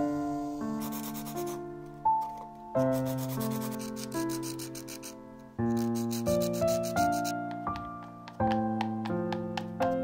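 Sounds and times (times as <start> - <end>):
slow piano chords: 0.0 - 10.0
fast scratchy rubbing: 0.8 - 1.6, 2.8 - 7.4.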